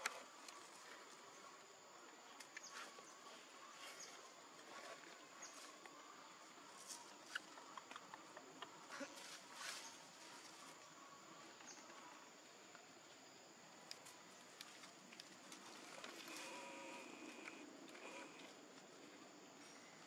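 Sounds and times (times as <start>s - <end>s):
high insect hum: 0.0s - 20.0s.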